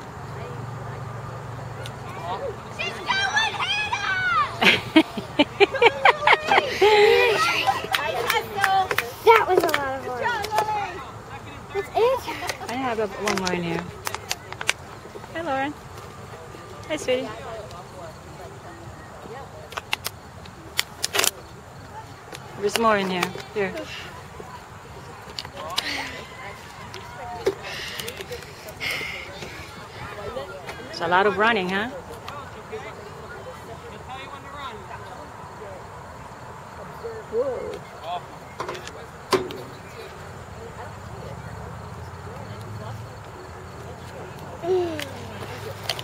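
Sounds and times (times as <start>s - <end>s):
faint distant voices: 0.0s - 46.0s
faint spectator voices: 23.5s - 31.0s, 36.7s - 46.0s.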